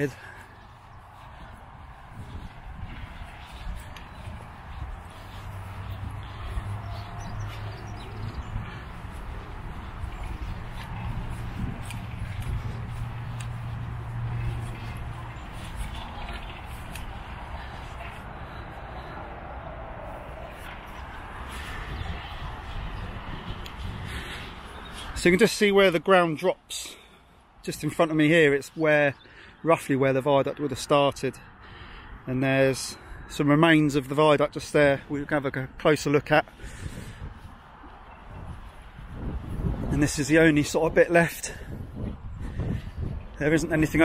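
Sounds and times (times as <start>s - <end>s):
footsteps on grass: 0.0s - 28.4s, 35.8s - 44.0s.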